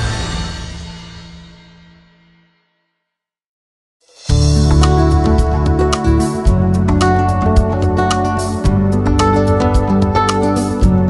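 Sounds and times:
instrumental theme music with beat: 0:04.1 - 0:11.0.

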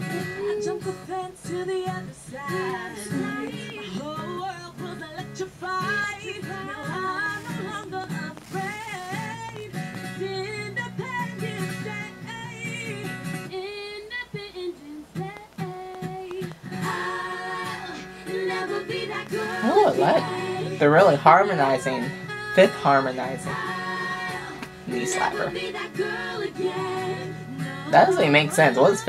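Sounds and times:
acoustic guitar: 0:00.0 - 0:29.0
female vocal group singing in harmony: 0:00.0 - 0:29.0.

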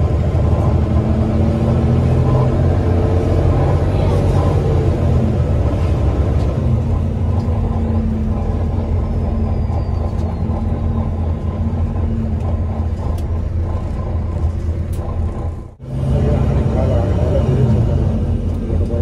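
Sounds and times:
bus diesel engine drone: 0:00.0 - 0:19.0
road noise: 0:00.0 - 0:19.0.

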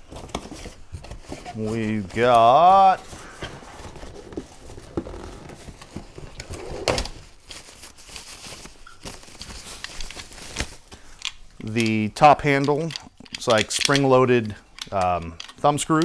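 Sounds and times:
plastic packaging rustling: 0:00.0 - 0:16.0
handling clicks and taps: 0:11.2 - 0:16.0.

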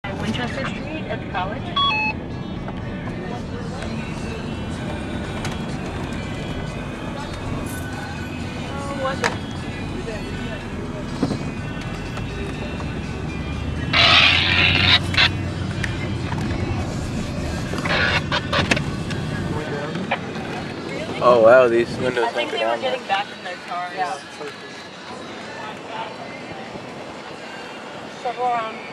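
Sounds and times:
car engine and road rumble: 0:00.0 - 0:28.9.

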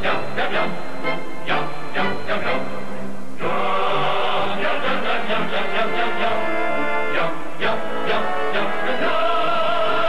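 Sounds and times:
advertising jingle music: 0:00.0 - 0:07.3
group of voices singing: 0:00.0 - 0:10.0.

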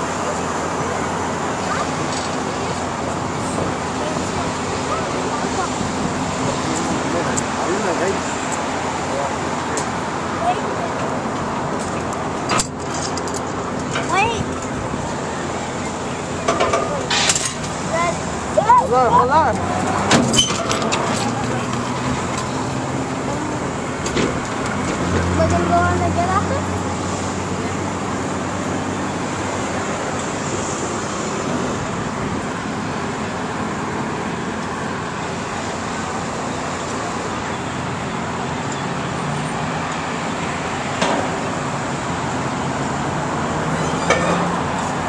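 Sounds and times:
distant voices: 0:00.0 - 0:45.0
road traffic noise: 0:00.0 - 0:45.0.

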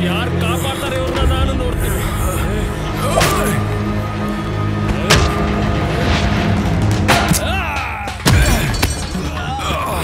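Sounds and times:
background film score: 0:00.0 - 0:10.0.

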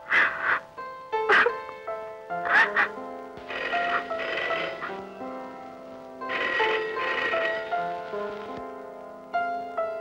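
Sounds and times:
soft film score music: 0:00.0 - 0:10.0.

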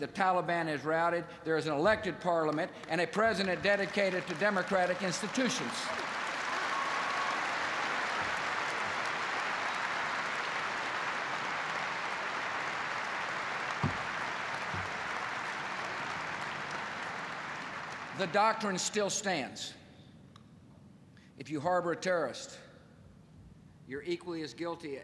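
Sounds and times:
audience applauding: 0:02.8 - 0:18.8.

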